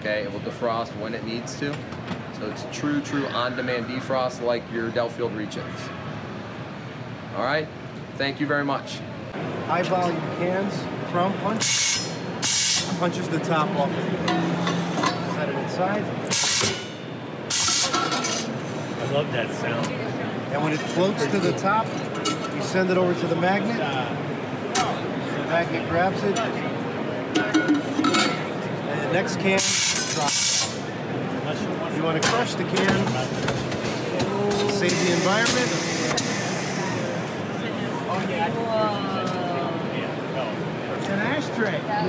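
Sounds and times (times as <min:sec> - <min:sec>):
exhibition hall noise: 0:00.0 - 0:42.0.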